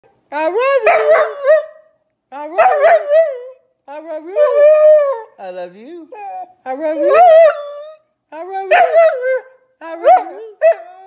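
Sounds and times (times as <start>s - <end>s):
dog howling: 2.6s - 3.6s, 6.2s - 8.0s, 8.7s - 11.0s.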